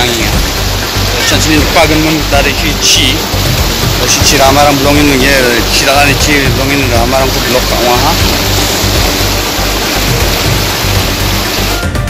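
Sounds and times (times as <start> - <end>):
background music with beat: 0.0 - 12.0
rushing floodwater: 0.0 - 12.0.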